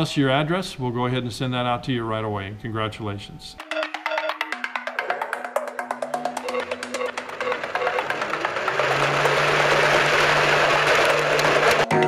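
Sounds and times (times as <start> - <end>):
electric motors and propellers spinning: 7.2 - 11.9.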